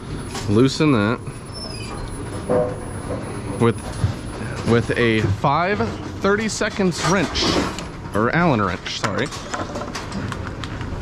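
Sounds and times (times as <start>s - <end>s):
mechanical rumble and hiss: 0.0s - 11.0s.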